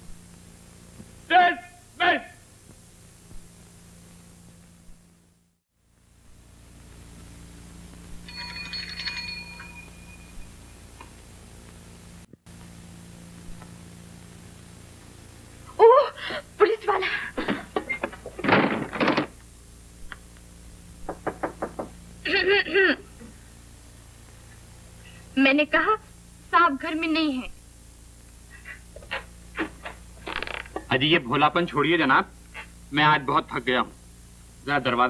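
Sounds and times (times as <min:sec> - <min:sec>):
film soundtrack hiss and hum: 0:00.0 - 0:35.0
person calling out: 0:01.3 - 0:02.4
electric bell ringing: 0:08.2 - 0:11.0
knocks on a door: 0:21.0 - 0:22.0.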